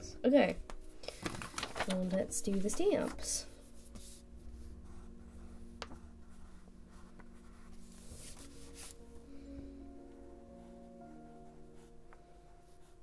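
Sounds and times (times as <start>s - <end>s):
soft background music: 0.0s - 13.0s
pen scratching on paper: 3.8s - 9.0s, 11.6s - 12.1s, 12.7s - 13.0s.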